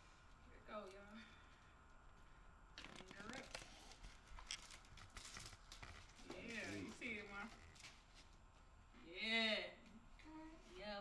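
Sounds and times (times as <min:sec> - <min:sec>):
packaging crinkling and rustling: 0:02.8 - 0:08.2.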